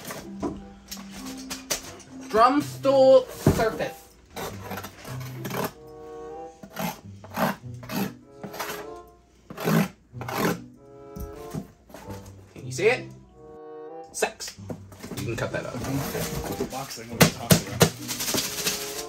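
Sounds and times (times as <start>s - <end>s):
background music repeating tones: 0.0s - 19.0s
knife cutting cardboard box: 4.4s - 5.8s, 6.6s - 8.9s, 9.5s - 10.6s.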